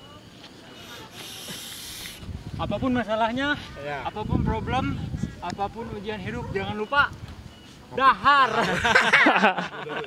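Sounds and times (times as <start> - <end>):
breathy hiss from mouth: 0.7 - 2.3.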